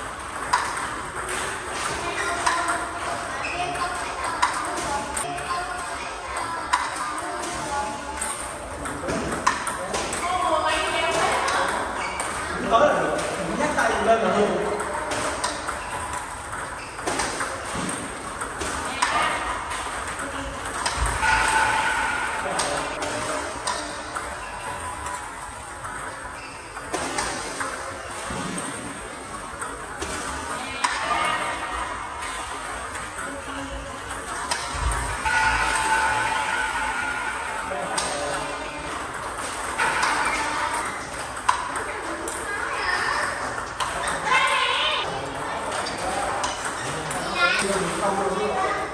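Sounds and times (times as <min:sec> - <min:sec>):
table tennis balls clicking: 0:00.0 - 0:36.1, 0:37.9 - 0:44.8.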